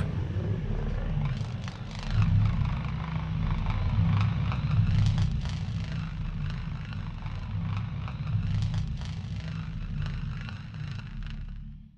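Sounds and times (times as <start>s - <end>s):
low mechanical rumble drone: 0.0s - 10.4s.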